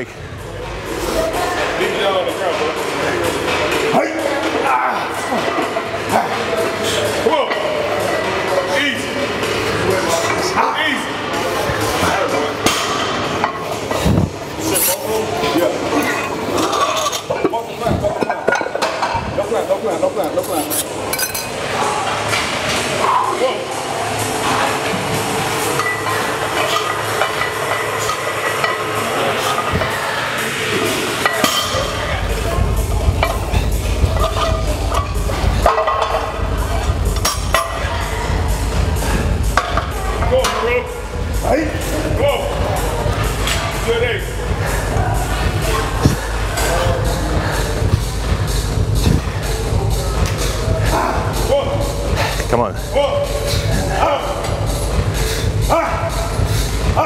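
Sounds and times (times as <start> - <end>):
background music: 18.5 - 57.0
deep bass: 31.7 - 57.0.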